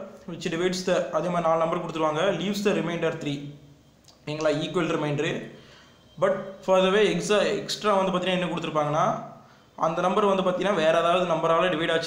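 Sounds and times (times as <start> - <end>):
man narrating: 0.2 - 3.5, 4.2 - 5.4, 6.2 - 9.2, 9.8 - 12.0.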